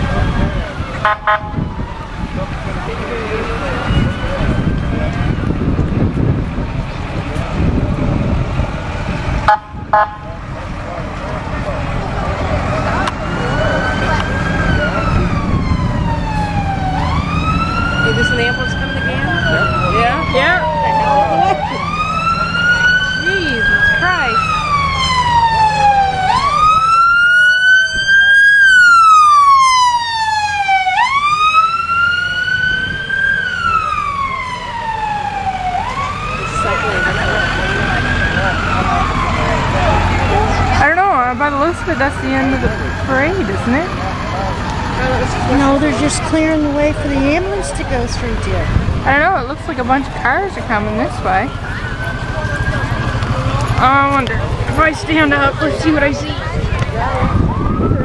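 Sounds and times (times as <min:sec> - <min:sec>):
ambulance siren wailing: 0:00.0 - 0:58.0
low vehicle rumble: 0:00.0 - 0:58.0.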